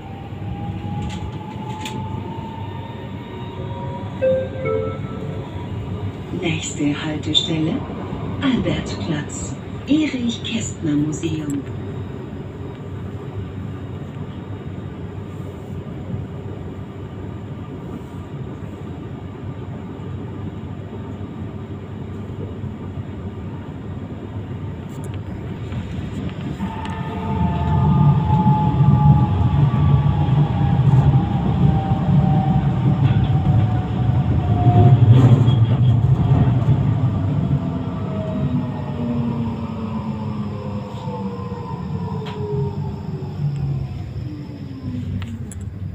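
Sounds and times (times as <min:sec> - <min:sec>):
tram wheels rumbling on rails: 0:00.0 - 0:45.9.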